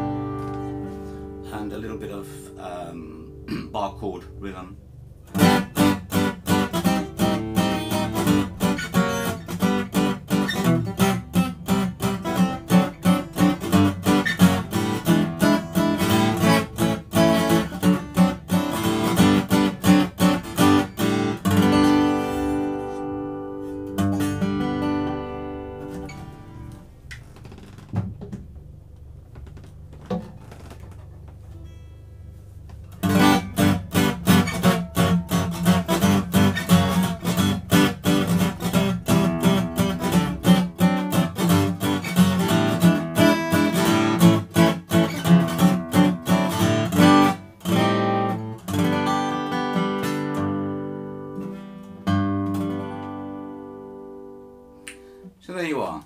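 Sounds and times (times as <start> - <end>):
acoustic guitar strumming: 0.0 - 28.2, 29.2 - 55.3.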